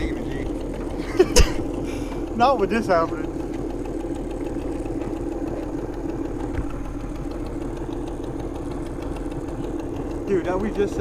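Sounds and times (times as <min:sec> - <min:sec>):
outboard motor idling: 0:00.0 - 0:11.0.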